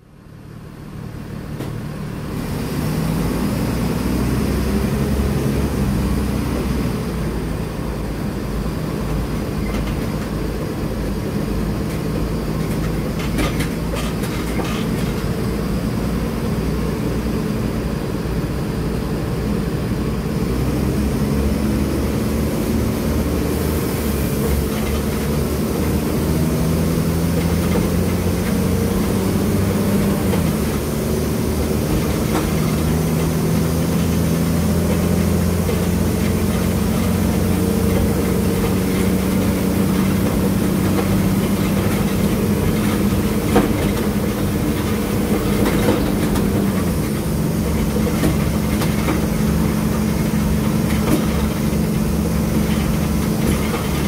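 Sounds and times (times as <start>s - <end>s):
bus diesel engine running: 0.0s - 54.0s.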